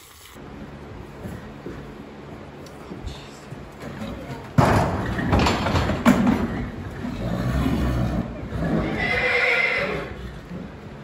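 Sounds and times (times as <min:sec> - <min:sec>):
horse whinnying: 0:07.1 - 0:10.5.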